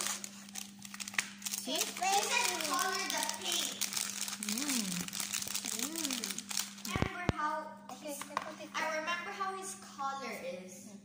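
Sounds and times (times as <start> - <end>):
plastic wrap crinkling: 0.0 - 7.3
child's voice: 1.6 - 3.9, 5.7 - 11.0.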